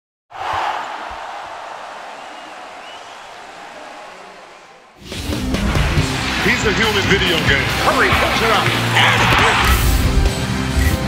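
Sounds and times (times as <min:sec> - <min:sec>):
arena crowd noise: 0:00.3 - 0:10.8.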